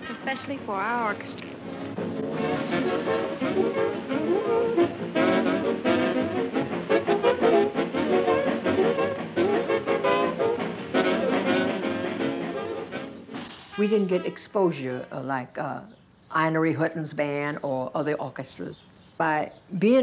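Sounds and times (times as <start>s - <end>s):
swing big band playing: 0.0s - 14.4s.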